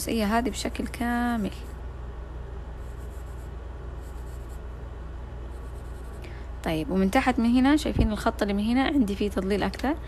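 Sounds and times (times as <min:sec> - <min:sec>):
steady low hum: 0:00.0 - 0:10.0
pencil scratching on paper: 0:02.8 - 0:04.8, 0:05.5 - 0:06.2.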